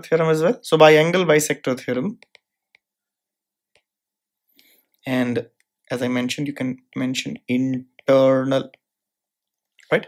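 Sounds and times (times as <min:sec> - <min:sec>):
person speaking: 0:05.0 - 0:08.9.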